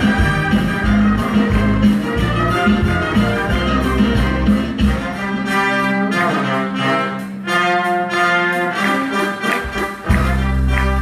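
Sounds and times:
orchestra playing held chords: 0.0s - 11.0s.

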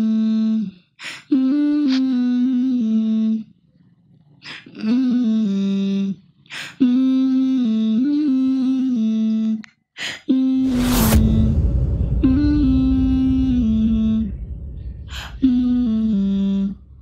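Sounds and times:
person humming a slow melody: 0.0s - 3.5s, 4.6s - 10.6s
breaths: 0.7s - 1.3s, 4.4s - 4.8s, 6.4s - 6.8s, 10.0s - 10.3s.

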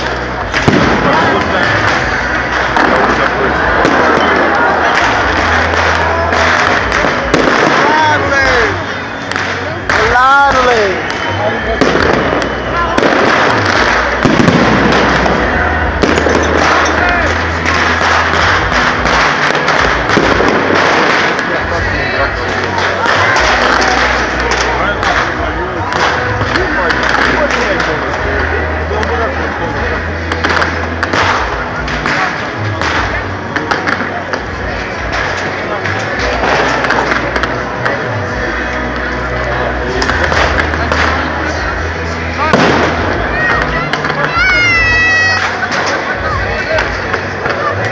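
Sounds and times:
fireworks bangs and crackles: 0.0s - 47.9s.

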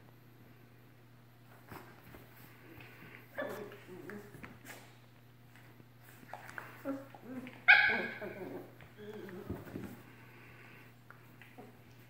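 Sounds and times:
dogs growling: 6.6s - 10.9s
dog barking: 7.7s - 8.3s.

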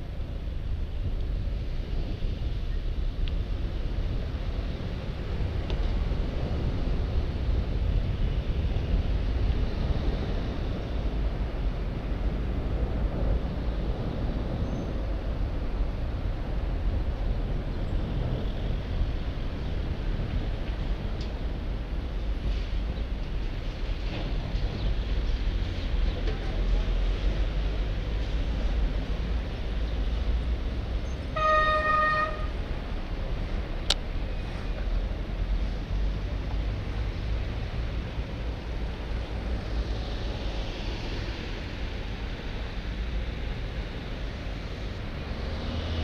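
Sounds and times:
car traffic passing: 0.0s - 46.0s
wind and road noise: 0.0s - 46.0s
horn steady note: 31.3s - 32.6s.

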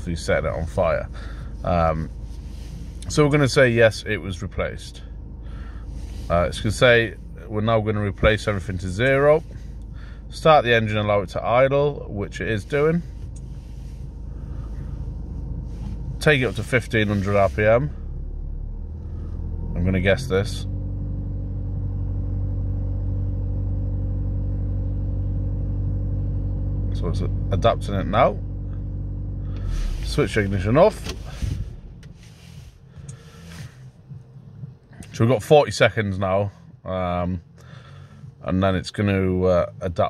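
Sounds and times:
diesel engine idling: 0.0s - 40.0s
faint low rumble: 0.0s - 40.0s
soft rustles: 1.4s - 3.4s, 12.5s - 17.8s, 29.6s - 34.7s.

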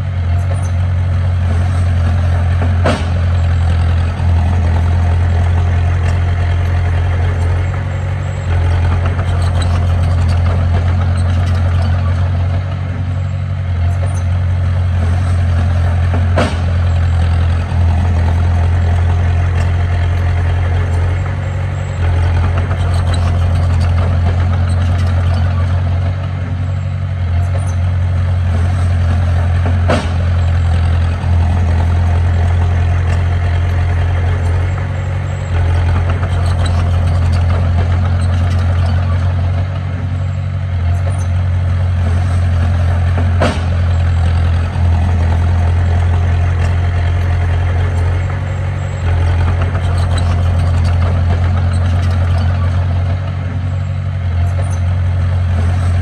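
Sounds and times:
bulldozer diesel engine droning: 0.0s - 56.0s
sharp knocks: 2.6s - 3.8s, 16.0s - 16.9s, 29.6s - 30.4s, 43.1s - 43.9s.

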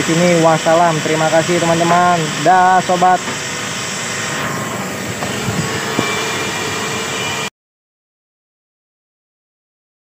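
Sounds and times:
steam cleaner hissing: 0.0s - 7.5s.

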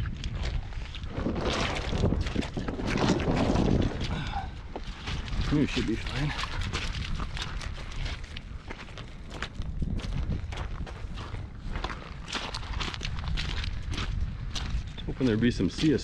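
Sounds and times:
low rumble: 0.0s - 15.7s
footsteps on gravel: 0.0s - 16.0s.

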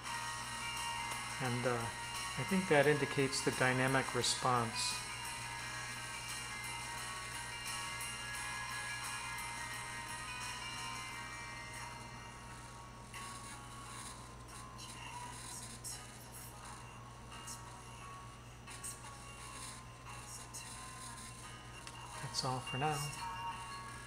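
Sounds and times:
steady low hum: 0.0s - 24.0s
thin music through small speaker: 0.0s - 24.0s.

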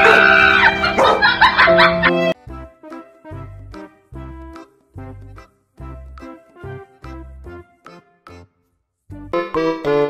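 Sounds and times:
dog calling: 0.0s - 1.4s
background music: 0.0s - 10.0s.

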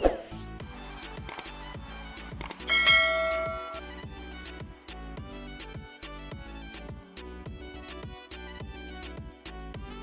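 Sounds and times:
background music: 0.0s - 10.0s
quick clicks: 1.2s - 1.6s, 2.3s - 2.7s
bell-like notification chime: 2.7s - 4.0s.

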